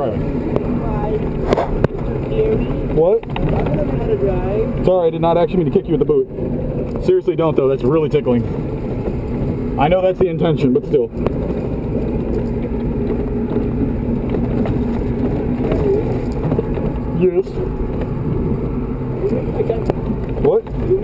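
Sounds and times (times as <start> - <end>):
diesel truck engine running: 0.0 - 21.0
road and rattle noise: 0.0 - 21.0.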